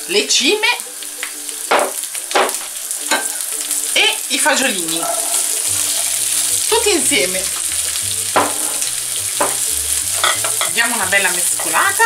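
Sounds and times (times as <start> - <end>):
asparagus sizzling in frying pan: 0.0 - 12.0.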